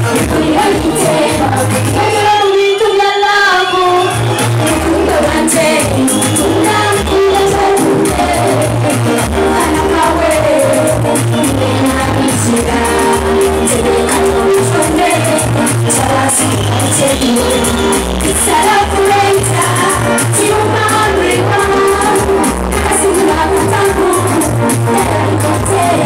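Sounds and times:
pulsing bass beat: 0.0 - 2.2, 4.0 - 26.0
woman singing into a microphone: 0.0 - 26.0.

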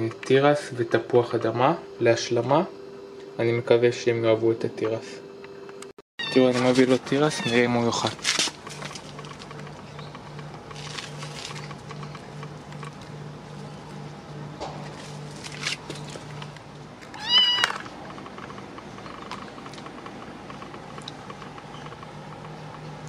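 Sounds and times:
kitten meowing: 6.2 - 7.8, 17.2 - 17.8.

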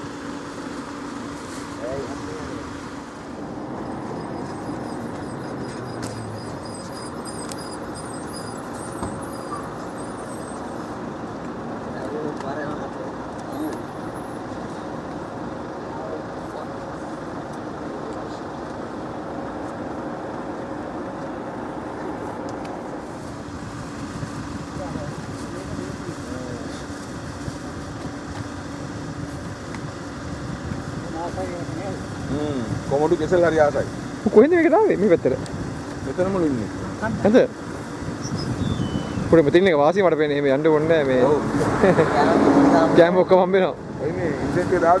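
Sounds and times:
faint voices murmuring: 3.4 - 15.0.

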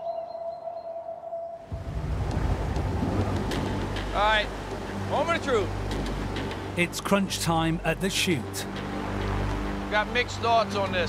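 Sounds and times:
low engine hum: 1.7 - 6.8
rushing white water: 1.7 - 11.0.

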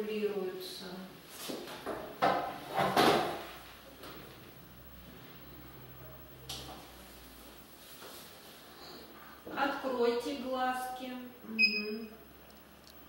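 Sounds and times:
faint low hum: 2.0 - 13.0.

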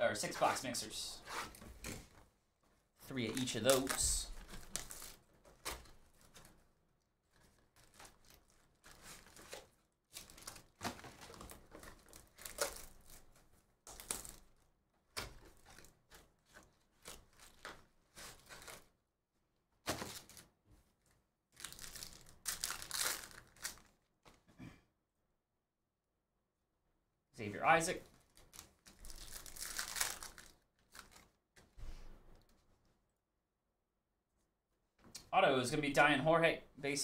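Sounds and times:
plastic wrapping crinkling and tearing: 3.2 - 6.6, 7.2 - 18.9, 21.6 - 24.0, 28.1 - 31.4.

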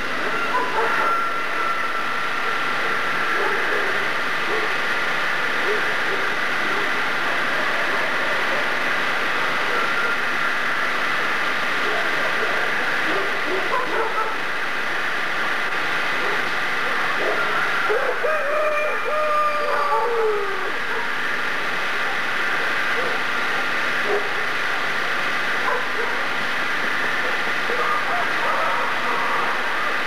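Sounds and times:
hiss and hum of old soundtrack: 0.0 - 30.0.

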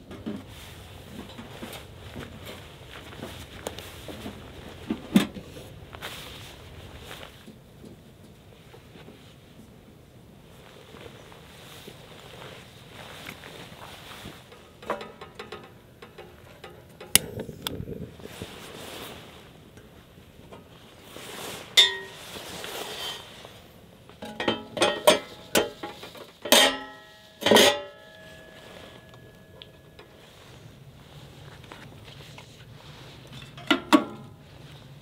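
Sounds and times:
metal grill parts clinking: 14.6 - 17.3, 21.8 - 22.4, 24.2 - 30.1.

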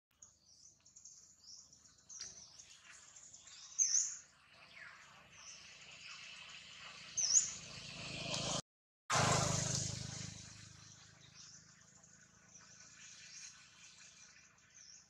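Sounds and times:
small birds chirping: 0.1 - 7.7, 10.4 - 15.0.

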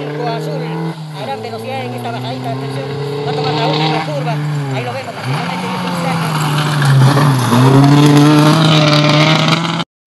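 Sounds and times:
rally car engine revving: 0.0 - 9.8.

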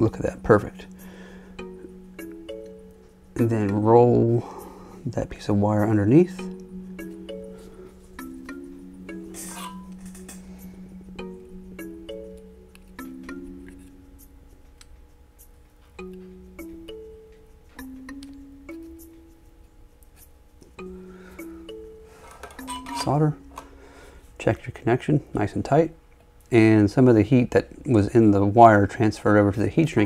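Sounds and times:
soft slow background music: 0.0 - 30.0.

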